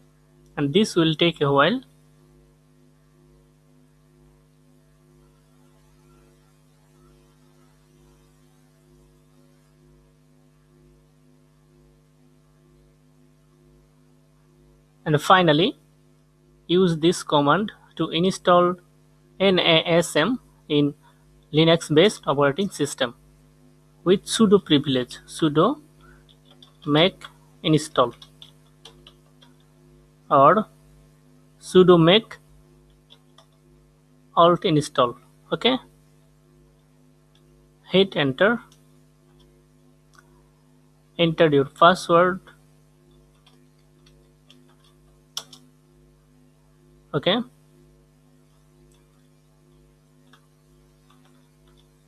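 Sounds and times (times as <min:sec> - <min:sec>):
faint electrical hum: 0:00.0 - 0:52.0
computer keyboard clicking: 0:28.1 - 0:29.6, 0:43.3 - 0:45.7.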